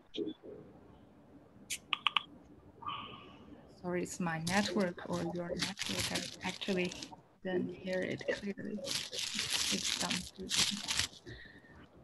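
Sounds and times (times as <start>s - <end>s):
garbled remote voice fragments: 1.7s - 2.2s, 4.5s - 10.9s
quick blips: 1.7s - 3.1s.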